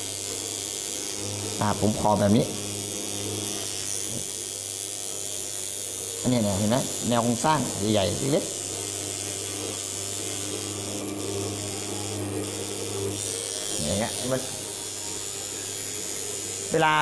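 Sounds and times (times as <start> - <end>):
tattoo machine buzzing: 0.0 - 17.0.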